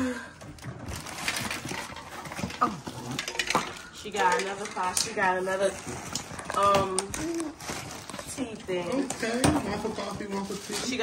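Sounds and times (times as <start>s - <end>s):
wrapping paper tearing: 0.8s - 3.1s, 5.4s - 11.0s.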